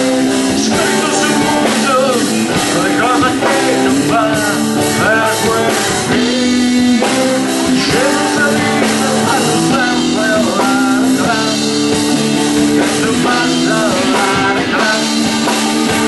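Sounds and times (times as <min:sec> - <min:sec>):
bending melodic guitar line: 0:00.0 - 0:16.0
drum kit: 0:00.0 - 0:16.0
electric guitars: 0:00.0 - 0:16.0.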